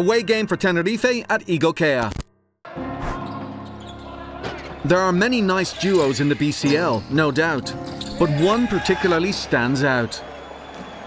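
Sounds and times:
narrator speaking: 4.9s - 10.2s.

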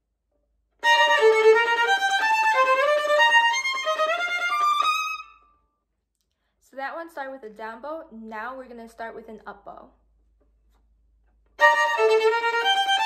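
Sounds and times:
violin playing fast passage: 0.8s - 5.4s, 11.6s - 13.0s.

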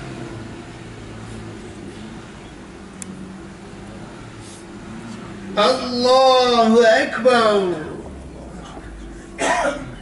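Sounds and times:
person coughing: 9.3s - 10.0s.

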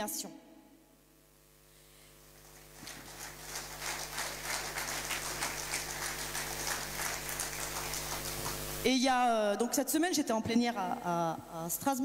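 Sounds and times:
audience applauding: 2.4s - 8.8s.

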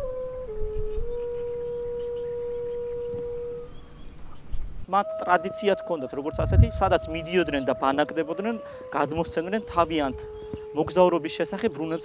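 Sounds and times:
long held music note: 0.0s - 12.0s
low rumble: 6.3s - 7.6s.

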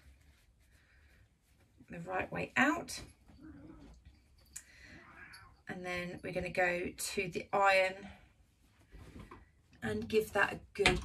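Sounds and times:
cloth handling: 0.0s - 4.9s, 8.3s - 10.2s.

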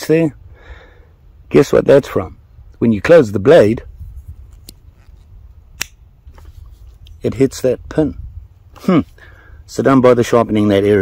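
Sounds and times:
folding knife snapping shut: 5.8s - 6.0s.

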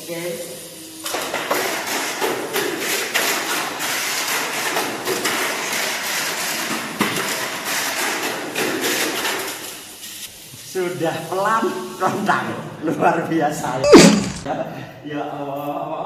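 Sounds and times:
sharp knock: 13.9s - 14.5s.

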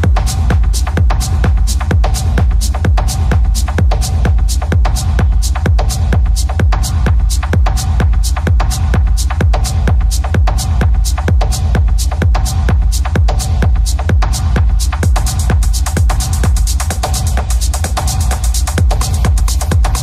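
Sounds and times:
electronic dance music: 0.0s - 20.0s.

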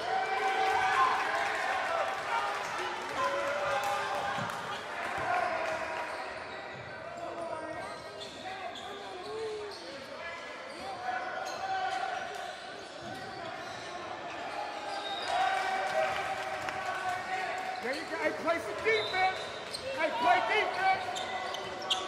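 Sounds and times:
voices in a hall: 0.0s - 22.0s
shoe squeaks: 6.1s - 15.3s, 18.8s - 22.0s.

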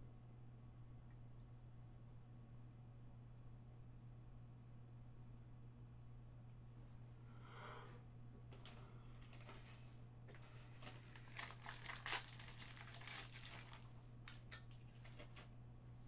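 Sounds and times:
steady low hum: 0.0s - 16.0s
foil wrapper crinkling: 8.6s - 15.6s.

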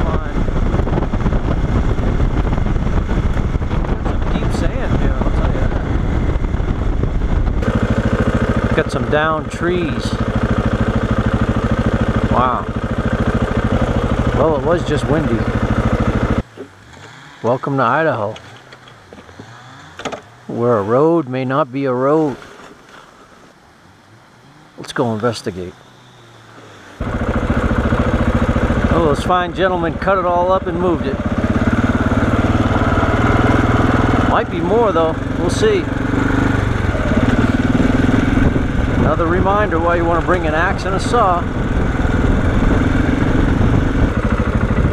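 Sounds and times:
motorcycle engine at low revs: 0.0s - 44.9s.

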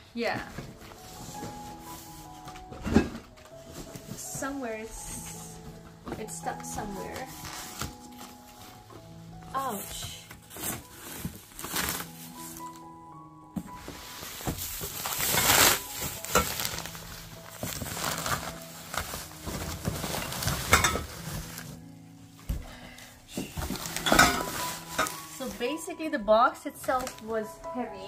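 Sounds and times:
background music with held notes: 0.0s - 28.0s
bubble wrap and cardboard crinkling: 0.0s - 28.0s.

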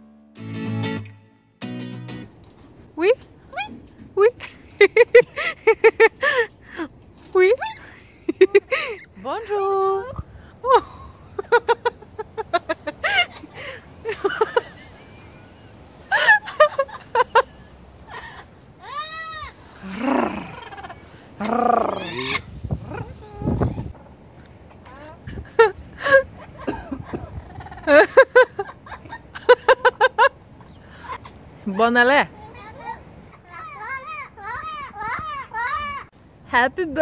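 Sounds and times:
cockatoos squawking: 7.5s - 9.2s, 11.6s - 23.6s
parrots squawking: 19.4s - 23.2s.

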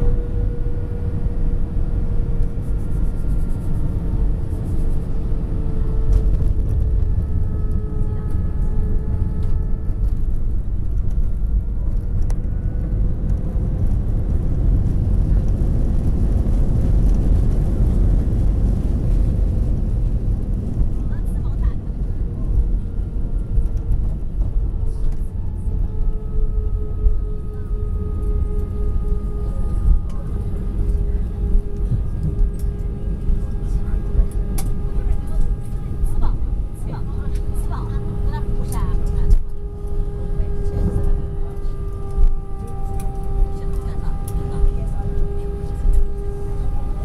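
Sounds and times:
airplane cabin rumble: 0.0s - 47.0s
faint steady whine: 0.0s - 47.0s.

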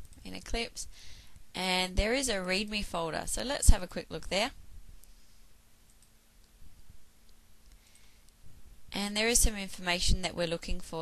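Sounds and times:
faint steady hum: 0.0s - 11.0s
computer mouse clicks: 5.9s - 6.6s.

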